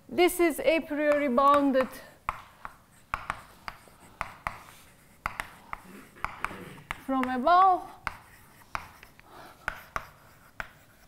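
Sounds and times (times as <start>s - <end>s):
chalk tapping on blackboard: 1.0s - 11.0s
chalk scratching: 2.3s - 11.0s.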